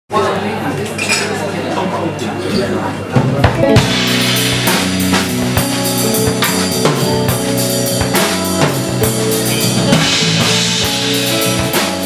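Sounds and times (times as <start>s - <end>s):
crowd chatter: 0.1s - 12.0s.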